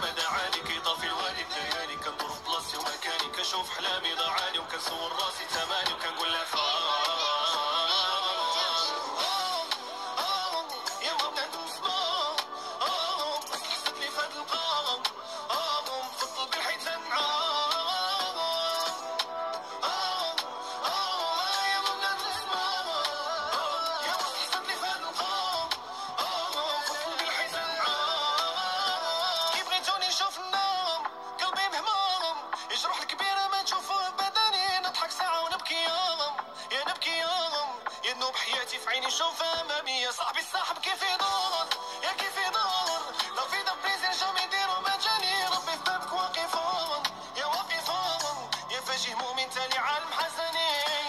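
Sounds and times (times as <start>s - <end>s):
music backing: 0.0s - 51.0s
person singing over a beat: 0.0s - 51.0s.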